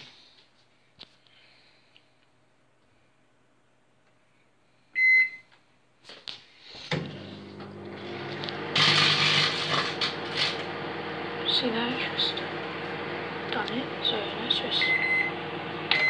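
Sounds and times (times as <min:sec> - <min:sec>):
microwave beep: 0:05.0 - 0:05.5, 0:14.7 - 0:16.0
microwave running hum: 0:06.9 - 0:16.0.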